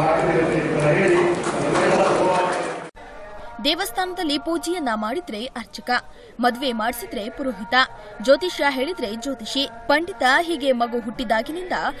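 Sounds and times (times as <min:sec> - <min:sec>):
man speaking into a microphone: 0:00.0 - 0:02.9.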